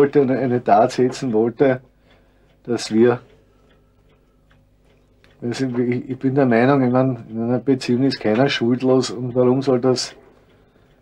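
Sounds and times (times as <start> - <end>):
man speaking: 0.0 - 1.8, 2.7 - 3.3, 5.4 - 10.2
faint ticks: 0.9 - 11.0.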